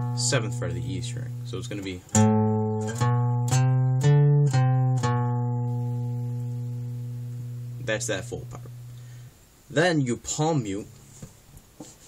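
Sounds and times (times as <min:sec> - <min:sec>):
acoustic guitar notes: 0:00.0 - 0:11.4.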